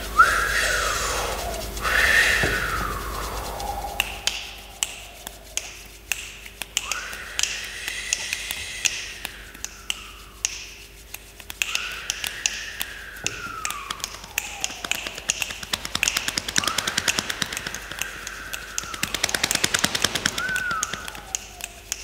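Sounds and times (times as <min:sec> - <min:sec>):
mouth-made wind sounds: 0:00.0 - 0:22.0
finger snaps and taps: 0:03.5 - 0:22.0.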